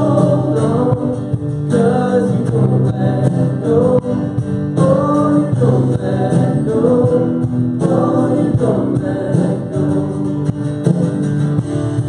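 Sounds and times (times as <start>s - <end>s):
man singing: 0.0s - 10.7s
acoustic guitar: 0.0s - 12.0s
drum kit: 0.0s - 12.0s
electric bass: 0.0s - 12.0s
keyboard: 0.0s - 12.0s.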